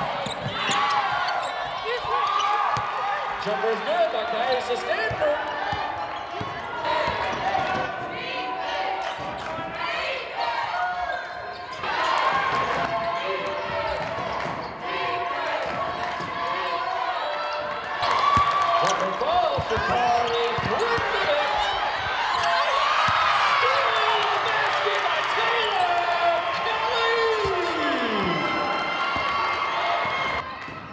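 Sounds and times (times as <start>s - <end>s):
crowd voices in a hall: 0.0s - 30.9s.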